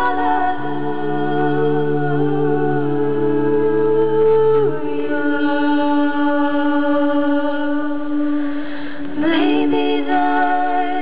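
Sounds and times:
a cappella group singing: 0.0s - 11.0s.

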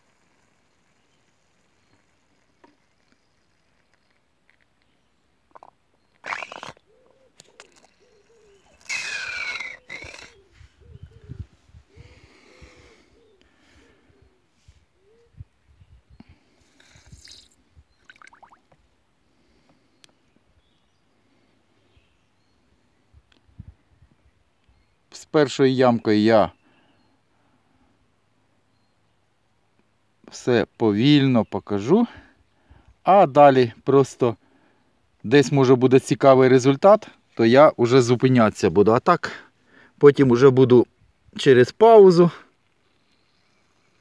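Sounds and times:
bulb syringe sputtering: 5.5s - 6.8s, 7.4s - 10.4s, 16.7s - 18.6s.

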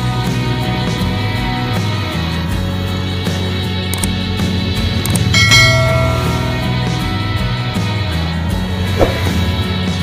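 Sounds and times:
background music: 0.0s - 10.0s
notification bell ringing: 5.4s - 7.2s.

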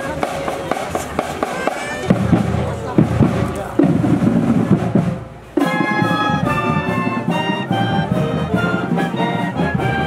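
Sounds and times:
deep heavy drumming: 0.0s - 10.0s
drum line playing a beat: 0.0s - 10.0s.

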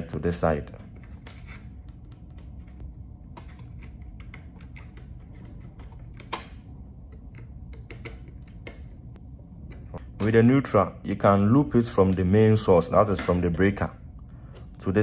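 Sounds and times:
low background hum: 0.0s - 15.0s
screwdriver clicks and taps: 7.1s - 8.8s.

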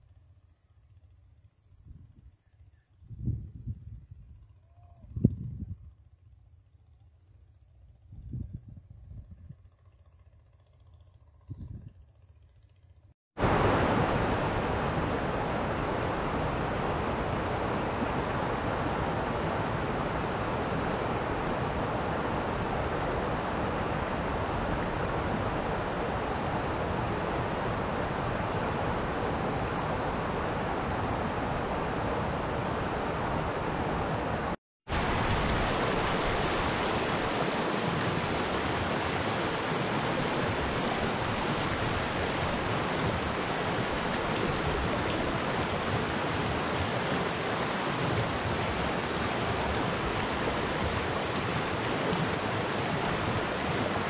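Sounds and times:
river water rushing over stones: 13.4s - 54.0s.

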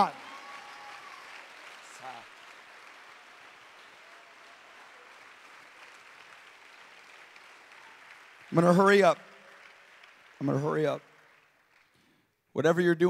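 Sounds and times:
congregation applauding: 0.0s - 13.0s.

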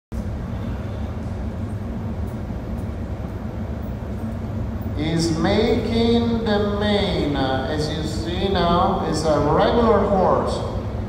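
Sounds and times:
furnace burning rumble: 0.1s - 11.0s.

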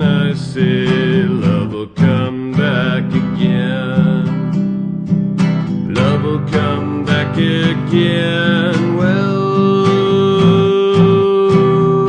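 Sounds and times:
acoustic guitar strumming: 0.0s - 12.0s
person singing folk song: 0.0s - 12.0s.

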